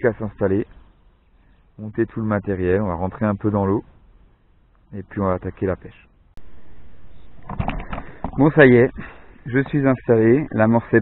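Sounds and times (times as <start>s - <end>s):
low rumble: 6.3s - 8.4s.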